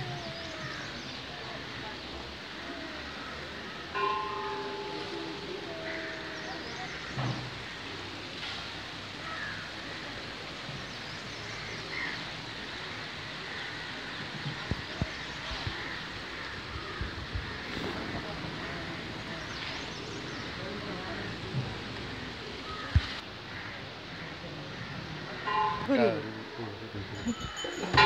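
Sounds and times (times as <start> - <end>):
outdoor background noise: 0.0 - 28.0.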